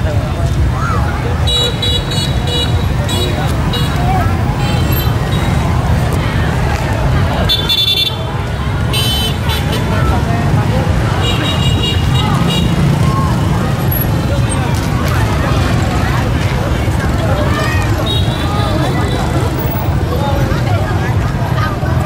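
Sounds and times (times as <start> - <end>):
crowd chatter: 0.0 - 22.0.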